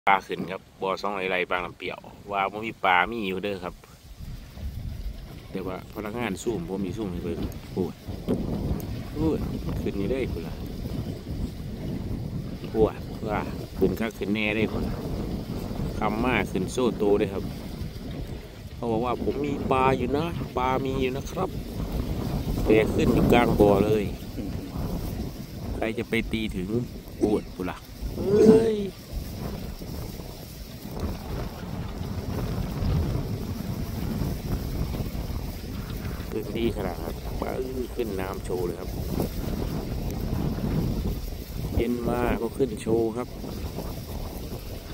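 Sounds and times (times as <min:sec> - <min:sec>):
choppy water on pond: 0:00.0 - 0:44.9
wind buffeting microphone: 0:00.1 - 0:44.9.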